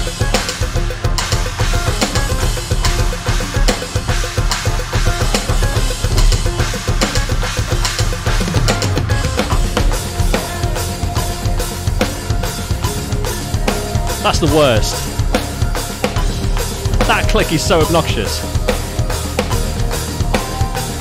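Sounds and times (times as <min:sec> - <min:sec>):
electronic drum kit played fast: 0:00.0 - 0:21.0
recorded backing music: 0:00.0 - 0:21.0.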